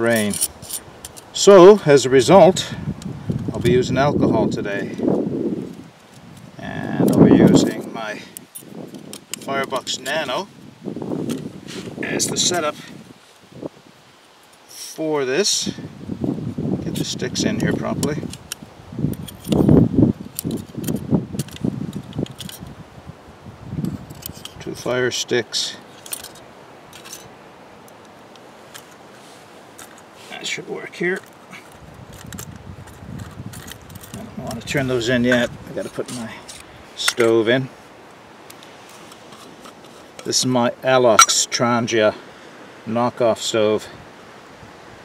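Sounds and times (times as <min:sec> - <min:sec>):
low background hiss: 0:00.0 - 0:45.0
screw cap ticking and scraping: 0:00.1 - 0:01.3, 0:07.0 - 0:07.3, 0:18.0 - 0:22.7, 0:23.8 - 0:24.6, 0:31.2 - 0:34.3, 0:35.2 - 0:37.3, 0:38.5 - 0:40.3.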